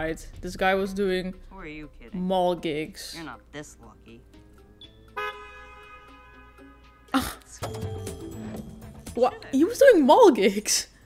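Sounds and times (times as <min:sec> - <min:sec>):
car horn toot: 0:05.0 - 0:07.2.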